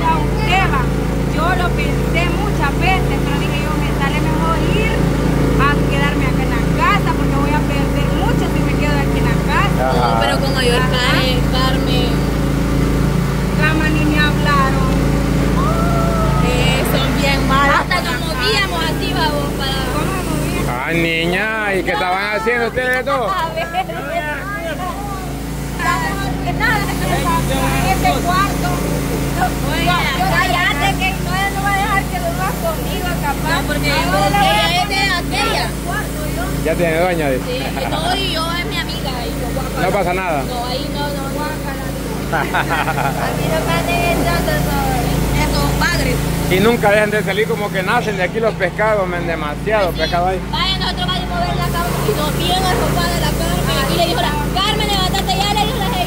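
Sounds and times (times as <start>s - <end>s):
low machine hum: 0.0s - 56.0s
people talking: 0.0s - 56.0s.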